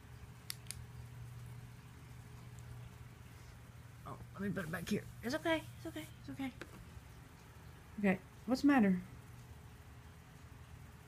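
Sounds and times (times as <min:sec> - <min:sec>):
faint low hum: 0:00.0 - 0:11.0
sharp clicks: 0:00.4 - 0:00.8.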